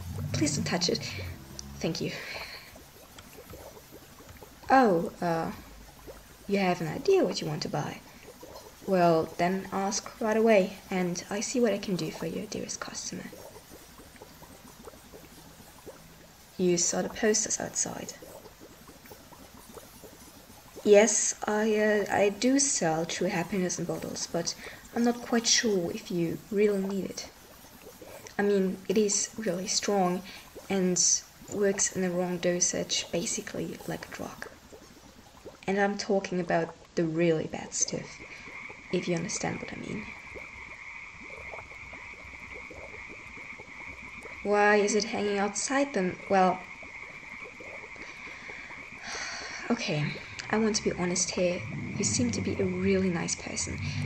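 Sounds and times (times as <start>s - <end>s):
liquid bubbling: 0.0s - 54.0s.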